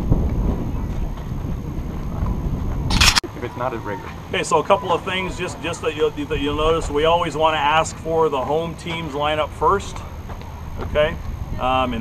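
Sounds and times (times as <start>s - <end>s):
wind buffeting microphone: 0.0s - 3.2s.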